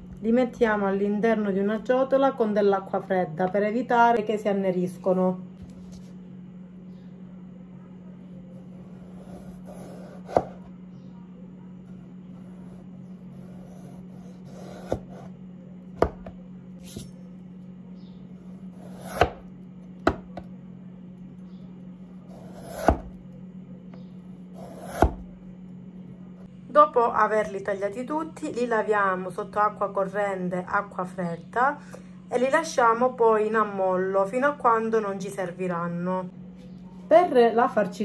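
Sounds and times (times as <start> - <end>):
low hum: 0.0 - 38.0
knife scraping through potato: 12.4 - 15.3, 18.6 - 19.4, 22.3 - 23.1.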